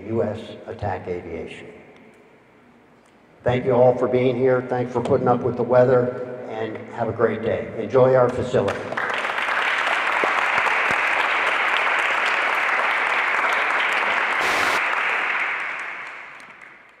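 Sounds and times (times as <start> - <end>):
audience applauding: 8.9 - 17.0.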